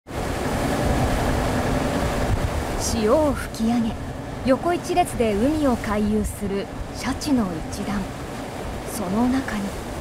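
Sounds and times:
sea noise: 0.1 - 10.0
wind: 0.1 - 10.0.

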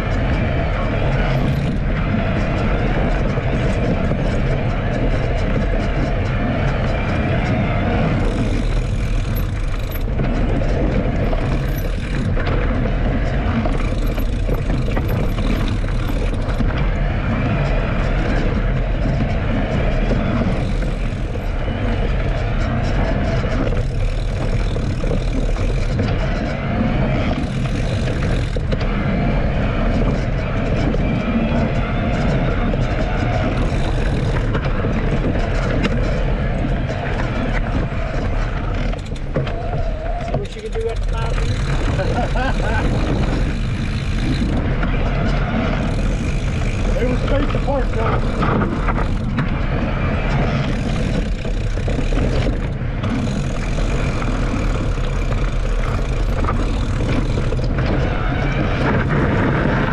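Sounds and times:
bike tyres rolling over rocks: 0.0 - 59.9
wind buffeting microphone: 0.0 - 59.9.

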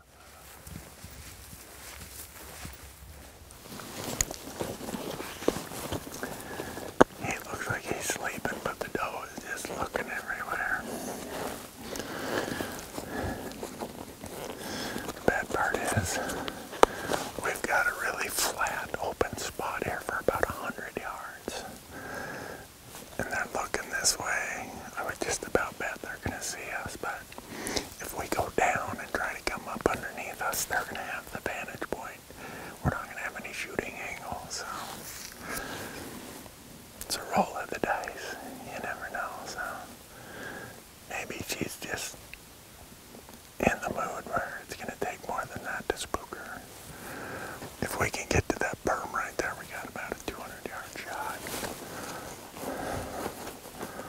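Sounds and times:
man whispering: 4.0 - 36.4, 37.0 - 40.1, 40.8 - 42.2, 43.6 - 54.0.

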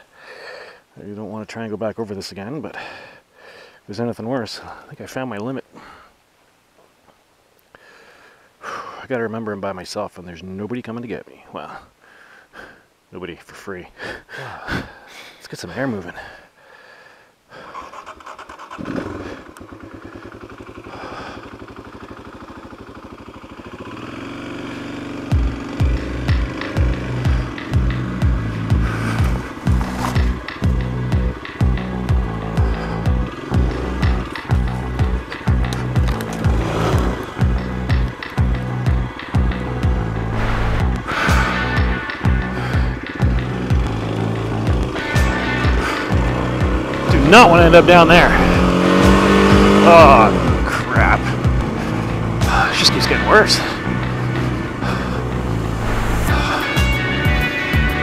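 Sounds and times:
motorcycle engine running: 18.6 - 58.0
music with steady beat: 40.2 - 44.0, 56.3 - 58.0.

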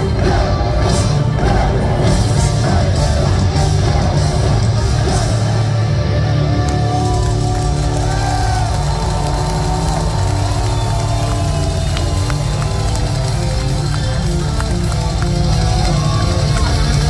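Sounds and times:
crowd noise: 0.0 - 17.0
metal band playing live: 0.0 - 17.0.

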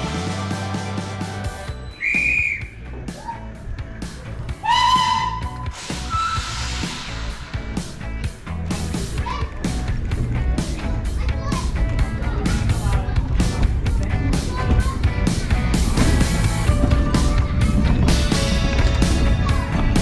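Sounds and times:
background music with beat: 0.0 - 20.0
short high whistle: 1.6 - 2.8, 4.7 - 7.4
steam locomotive whistle: 4.6 - 7.0.

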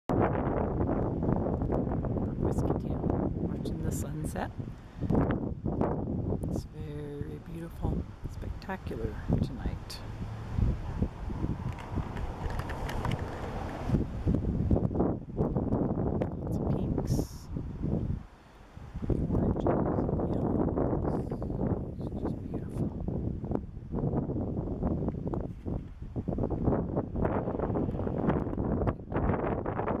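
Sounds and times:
wind buffeting microphone: 0.1 - 30.0.

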